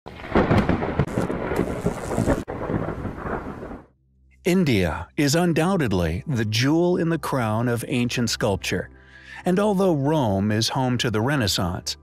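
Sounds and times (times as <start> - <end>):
rain: 0.1 - 3.9
thunder cracks and rumbling: 0.1 - 3.9.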